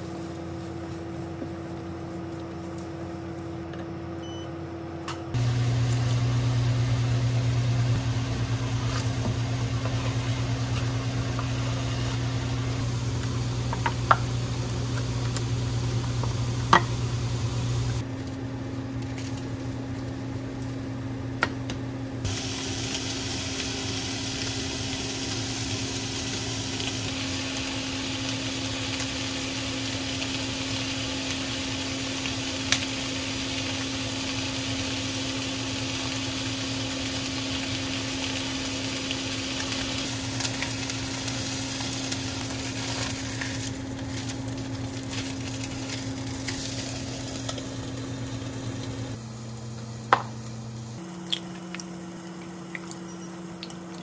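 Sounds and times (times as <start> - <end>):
low electrical hum: 0.0 - 54.0
food sizzling: 5.3 - 18.0, 22.2 - 54.0.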